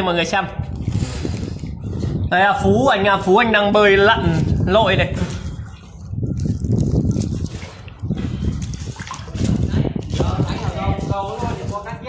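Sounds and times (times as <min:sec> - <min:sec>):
river water sloshing and splashing: 0:05.2 - 0:10.7.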